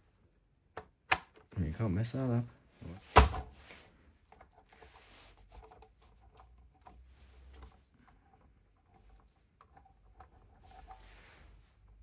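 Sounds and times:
faint clicks and taps of handling: 0:04.2 - 0:11.2.

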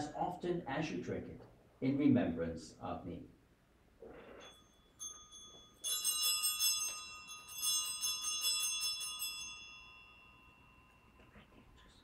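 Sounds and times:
altar bell ringing: 0:04.4 - 0:11.3.

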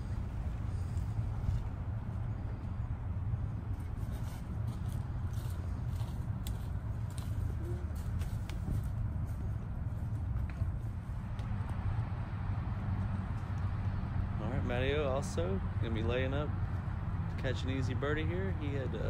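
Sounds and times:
low outdoor rumble: 0:00.0 - 0:19.0
footsteps on dry leaves: 0:04.0 - 0:10.0.

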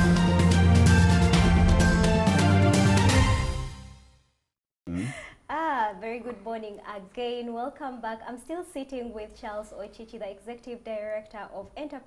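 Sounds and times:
music: 0:00.0 - 0:04.4
woman inhaling: 0:04.9 - 0:05.5.

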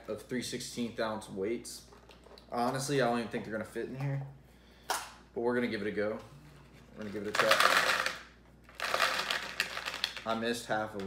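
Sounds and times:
plastic bag crinkling: 0:07.0 - 0:10.4.

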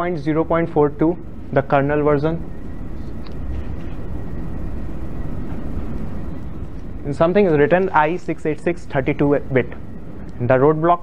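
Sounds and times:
faint high whine: 0:00.0 - 0:11.0
low rumbling room noise: 0:00.0 - 0:11.0.

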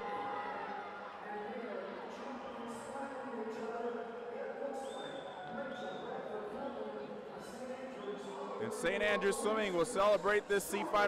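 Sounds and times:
crowd cheering and shouting: 0:00.0 - 0:02.0.

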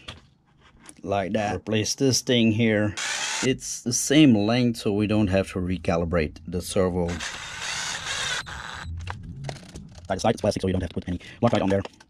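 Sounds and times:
cordless drill driving screw: 0:03.0 - 0:03.5, 0:07.1 - 0:08.8.

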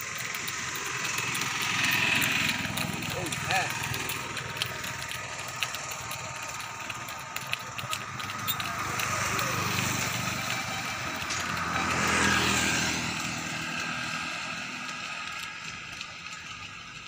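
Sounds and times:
motor scooter passing: 0:00.0 - 0:17.0
road noise: 0:00.0 - 0:17.0.

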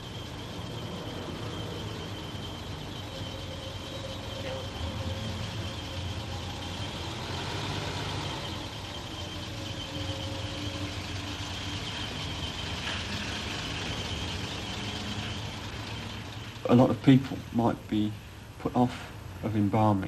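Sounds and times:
faint high whine: 0:00.0 - 0:20.0
vehicle engine running: 0:00.0 - 0:20.0.

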